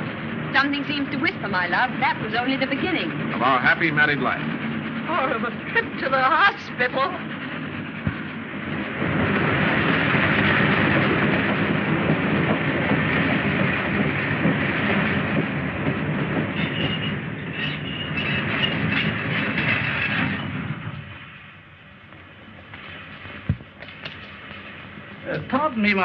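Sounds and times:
train rumble and clatter: 0.0s - 26.0s
high broken squeal: 16.5s - 21.6s.

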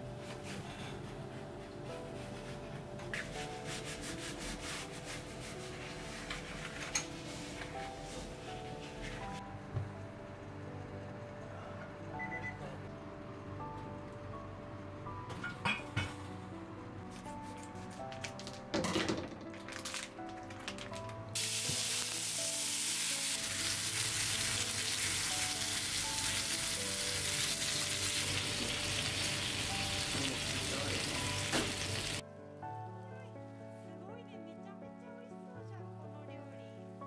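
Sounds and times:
food sizzling in a frying pan: 21.4s - 32.2s.

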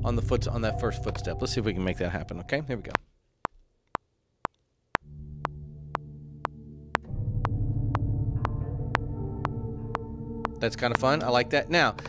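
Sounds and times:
fuller synth layer: 0.0s - 2.9s, 5.1s - 12.0s
low synthesizer pad: 0.0s - 2.9s, 5.0s - 12.0s.

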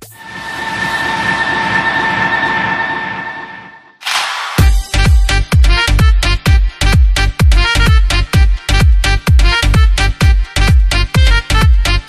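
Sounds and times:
high whine: 0.0s - 4.7s
train passing with rumble: 0.1s - 4.0s.

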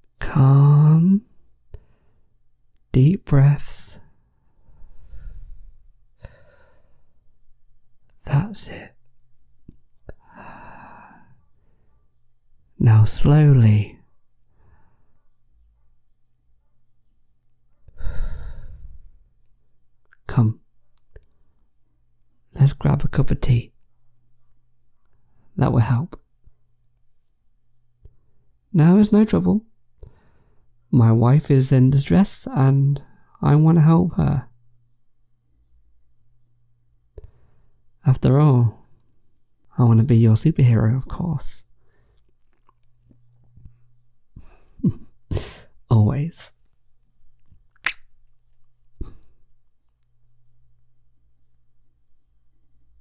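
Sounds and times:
person speaking: 0.0s - 1.4s, 2.8s - 4.1s, 8.1s - 9.1s, 12.7s - 14.1s, 22.5s - 23.8s, 25.6s - 26.3s, 39.7s - 41.8s, 44.4s - 46.7s.

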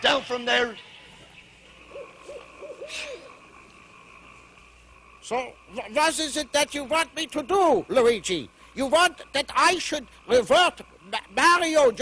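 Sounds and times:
man imitating monkey hoots: 2.0s - 3.4s.

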